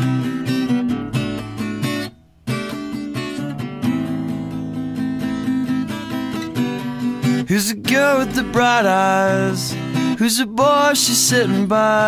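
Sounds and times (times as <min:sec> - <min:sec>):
acoustic guitar strumming chords: 0:00.0 - 0:12.0
person singing: 0:07.4 - 0:12.0.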